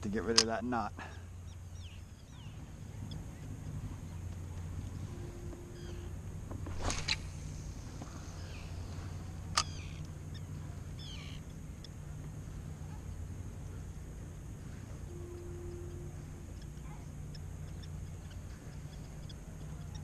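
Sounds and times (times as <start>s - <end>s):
steady low hum: 0.0s - 20.0s
bird chirps: 1.0s - 6.2s, 6.8s - 13.9s, 14.6s - 20.0s.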